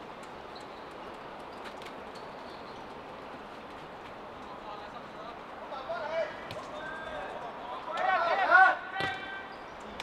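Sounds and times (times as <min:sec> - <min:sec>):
footballers shouting: 0:05.8 - 0:09.5.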